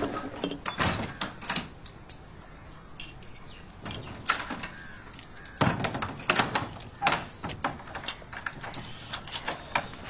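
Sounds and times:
sharp knocks and bangs: 5.6 - 8.1.

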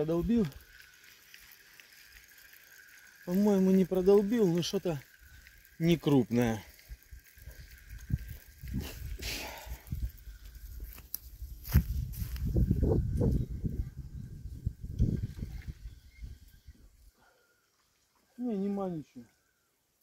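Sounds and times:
fishing line reeling in: 0.0 - 10.8.

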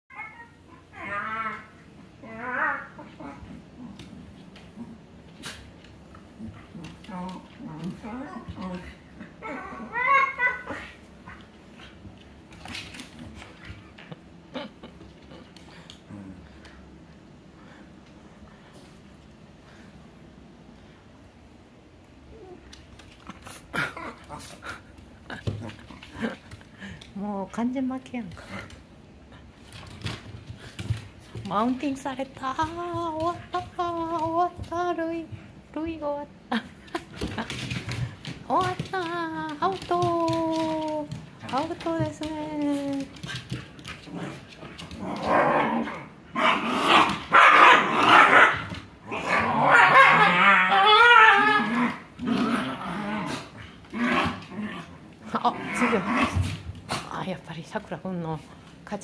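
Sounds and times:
dogs growling and barking: 23.2 - 26.9, 43.0 - 57.1
dog wavering howl: 49.3 - 52.1.

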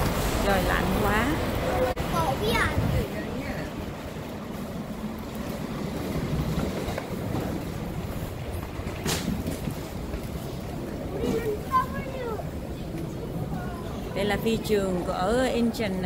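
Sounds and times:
airport terminal background noise: 0.0 - 16.0.

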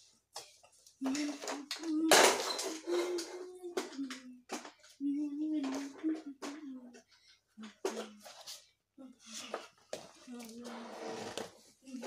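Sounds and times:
child making vocal sounds: 1.0 - 8.3.

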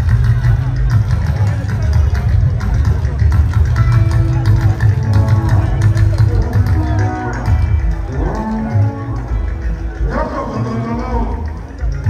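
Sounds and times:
heavy bass line: 0.0 - 12.0.

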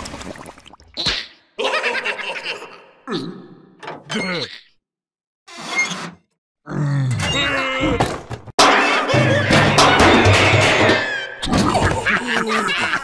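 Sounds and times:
grunting cartoon voices: 2.7 - 4.8, 6.6 - 8.0, 11.4 - 13.0.

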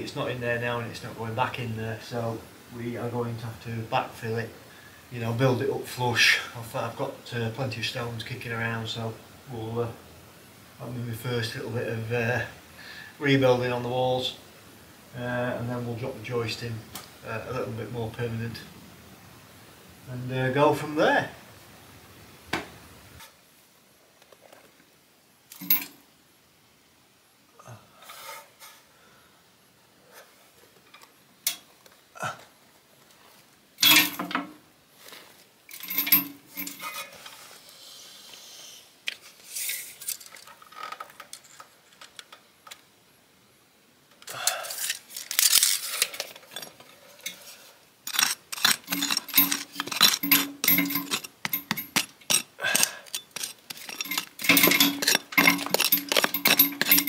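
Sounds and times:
hand tool striking stone: 48.1 - 57.0.

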